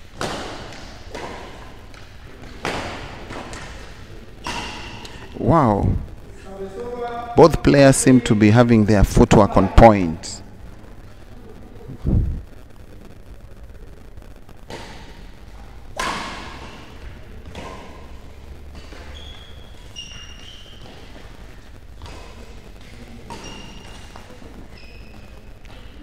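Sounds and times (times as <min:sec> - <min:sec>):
shoes squeaking on court floor: 0:00.3 - 0:05.4, 0:16.5 - 0:26.0
heavy low thump: 0:11.9 - 0:12.5.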